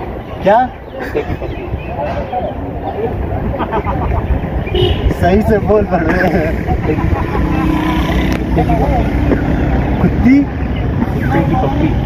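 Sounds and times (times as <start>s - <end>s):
men talking and laughing: 0.0s - 12.0s.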